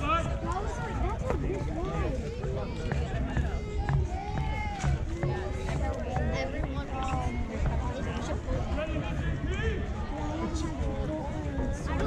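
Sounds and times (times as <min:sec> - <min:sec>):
overlapping voices talking: 0:00.0 - 0:12.0.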